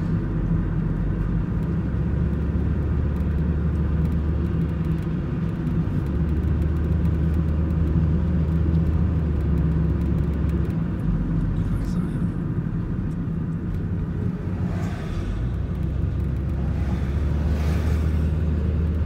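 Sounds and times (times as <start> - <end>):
car engine and road rumble: 0.0 - 19.0
deep hum: 10.8 - 19.0.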